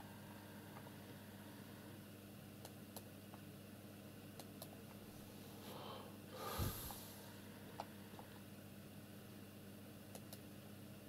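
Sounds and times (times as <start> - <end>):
snort-like nasal exhale: 6.4 - 7.3.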